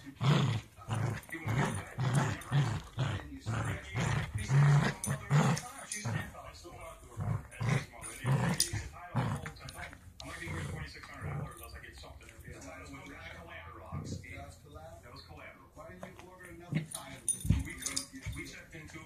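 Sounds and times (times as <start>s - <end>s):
small dog growling: 0.0s - 11.8s.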